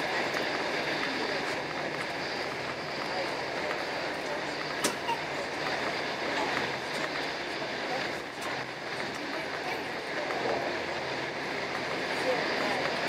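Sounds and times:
moving train running noise: 0.0 - 13.0.

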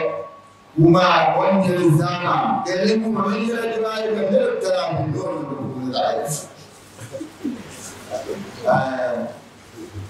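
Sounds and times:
man speaking: 0.8 - 10.0.

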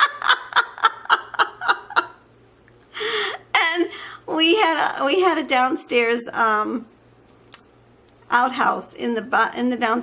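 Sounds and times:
woman laughing: 0.0 - 2.2.

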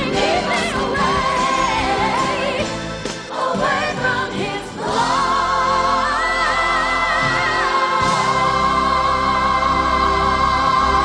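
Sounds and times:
gospel choir with band: 0.0 - 11.0.

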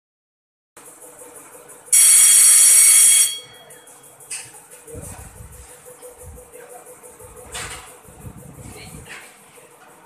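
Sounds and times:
electronic buzzer beep: 1.9 - 4.1.

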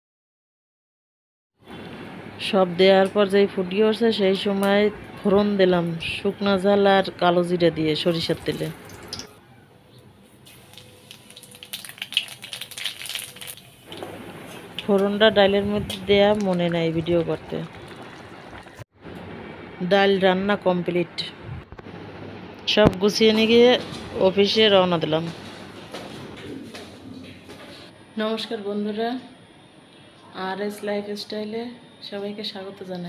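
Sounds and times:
seeds and chillies frying in oil: 10.4 - 18.8.

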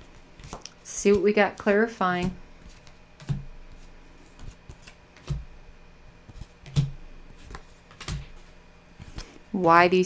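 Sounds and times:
cards slapping on wooden table: 6.3 - 8.4.

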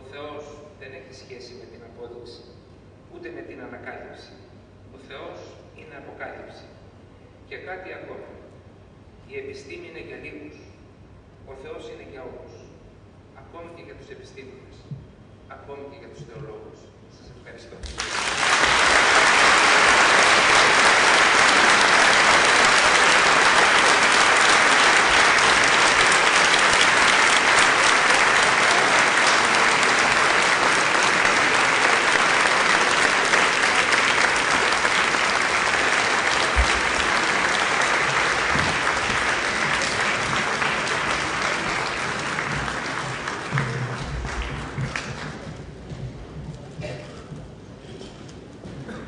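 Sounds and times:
audience applauding: 17.8 - 45.7.

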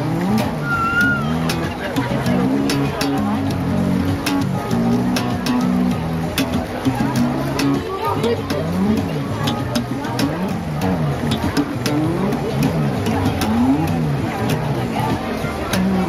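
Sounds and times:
funk electric bass sliding: 0.0 - 16.0.

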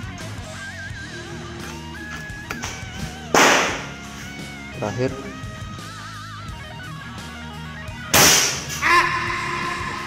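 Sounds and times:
background music: 0.0 - 10.0
air rifle shot: 3.3 - 4.0, 8.1 - 8.7.

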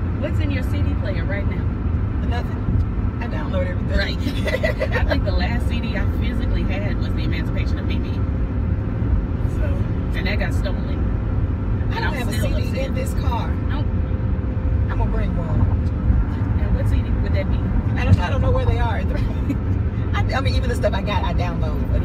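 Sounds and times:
car road and engine noise: 0.0 - 22.0
woman's voice: 3.2 - 8.2, 11.9 - 13.9, 16.5 - 22.0.

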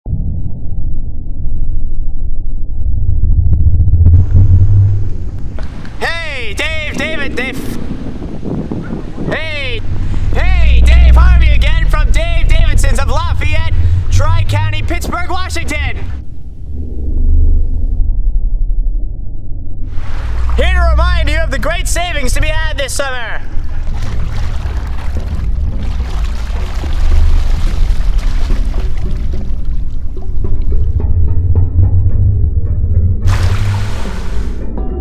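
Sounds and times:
loud low rumble with hiss: 2.1 - 7.9, 9.3 - 31.1.

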